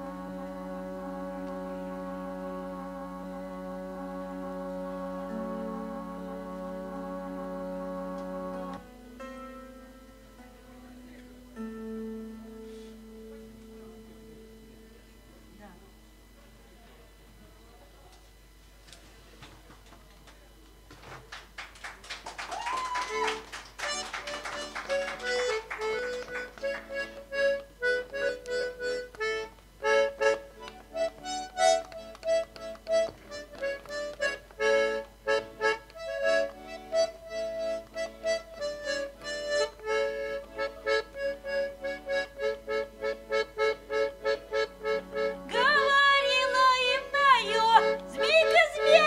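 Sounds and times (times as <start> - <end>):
accordion playing lively chords: 0.0 - 9.3, 23.2 - 49.0.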